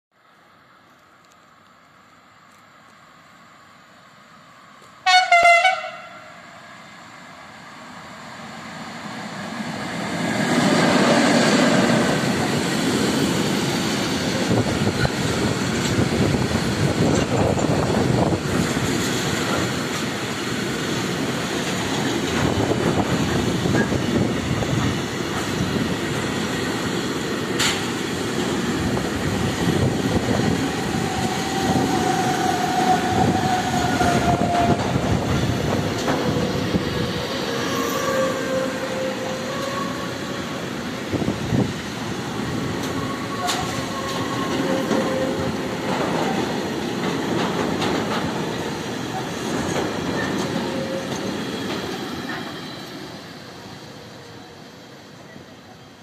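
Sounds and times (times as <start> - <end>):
locomotive passing: 7.6 - 55.9
train wagons rumbling: 9.7 - 53.7
wheel squeals: 42.8 - 46.4, 49.0 - 53.0.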